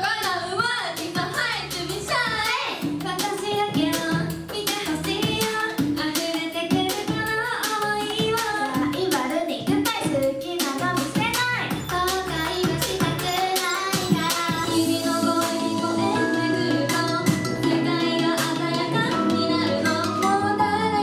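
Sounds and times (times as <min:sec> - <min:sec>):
dance-pop backing track: 0:00.0 - 0:21.0
girls singing into microphones: 0:00.0 - 0:21.0.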